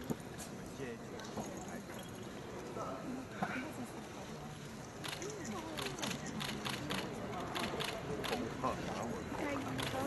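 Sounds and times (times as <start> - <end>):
faint audience murmur: 0.0 - 10.0.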